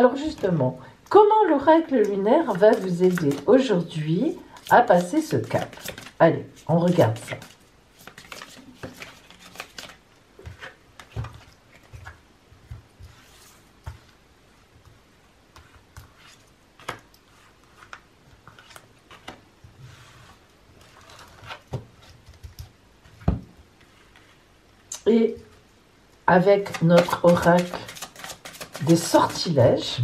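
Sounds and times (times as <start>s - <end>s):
cards being shuffled: 2.4s - 3.6s, 4.5s - 14.2s, 15.5s - 19.5s, 20.3s - 22.8s, 26.6s - 29.6s.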